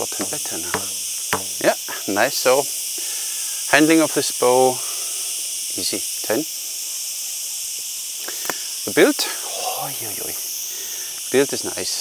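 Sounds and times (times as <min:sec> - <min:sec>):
insect chorus: 0:00.0 - 0:12.0.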